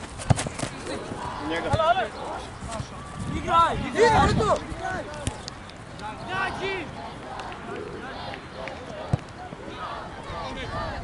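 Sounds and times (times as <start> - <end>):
open-air background noise: 0.0 - 11.0
distant shouts of players: 6.0 - 11.0.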